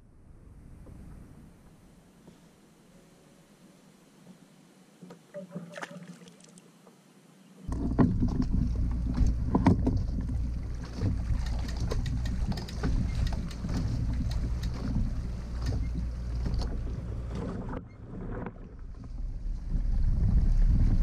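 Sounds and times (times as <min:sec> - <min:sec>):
water sloshing and splashing: 0:05.3 - 0:06.7, 0:07.7 - 0:21.0
knocks and clicks from hull: 0:07.7 - 0:19.2
wind rumble on microphone: 0:07.7 - 0:21.0.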